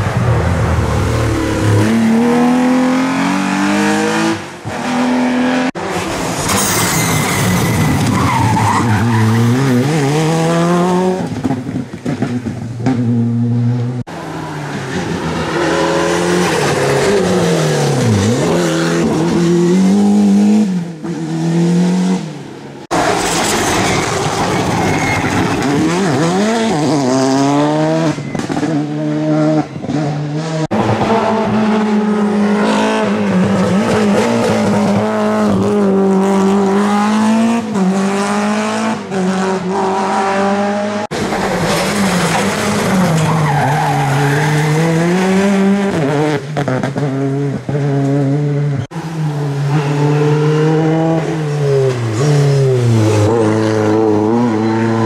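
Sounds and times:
rally cars passing: 0:00.0 - 0:55.0.

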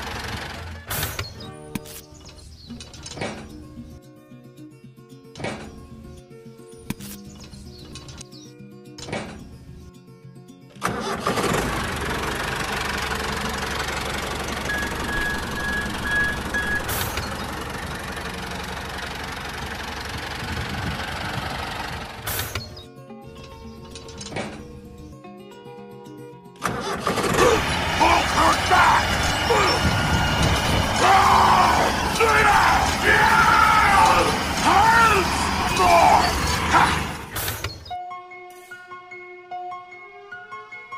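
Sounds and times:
tractor engine running: 0:00.0 - 0:03.9, 0:10.8 - 0:22.8, 0:26.6 - 0:37.9
music: 0:00.6 - 0:11.5, 0:22.6 - 0:37.0, 0:37.6 - 0:40.9
voices over music: 0:31.0 - 0:37.0.

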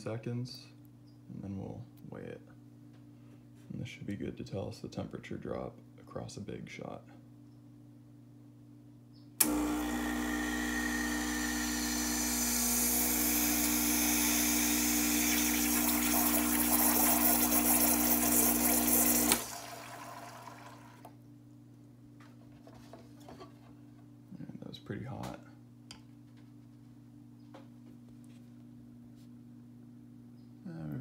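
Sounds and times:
espresso pump buzzing hum: 0:09.4 - 0:21.1
water hissing into cup: 0:15.0 - 0:20.8.

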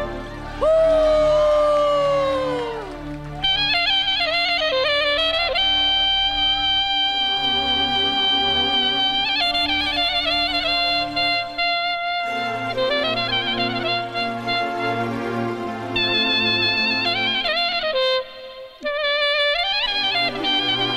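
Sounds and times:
wedding band music: 0:00.0 - 0:20.9.

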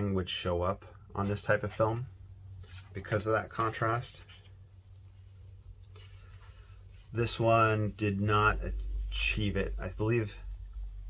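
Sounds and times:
film sheet rubbing on board: 0:01.3 - 0:11.0.

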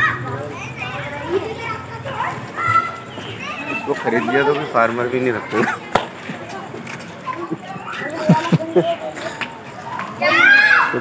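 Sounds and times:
children's voices: 0:00.0 - 0:11.0
voices talking: 0:00.0 - 0:11.0.

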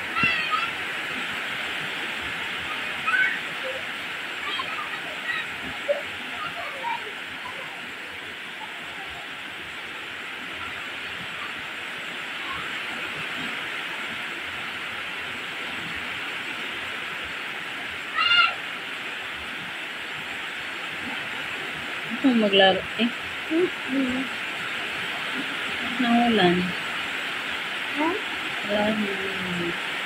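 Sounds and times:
rain falling on leaves: 0:00.0 - 0:30.0.

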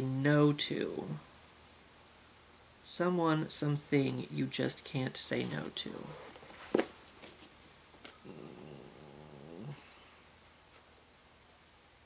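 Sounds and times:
man humming: 0:08.2 - 0:10.0
breathy hiss: 0:08.2 - 0:10.6.

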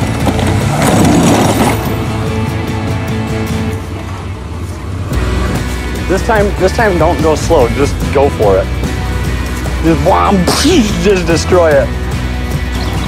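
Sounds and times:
music playing: 0:00.0 - 0:13.0.

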